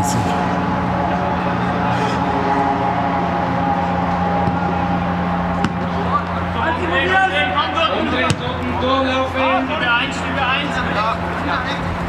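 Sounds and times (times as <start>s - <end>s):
steady low hum: 0.0s - 6.7s
players shouting: 0.0s - 12.0s.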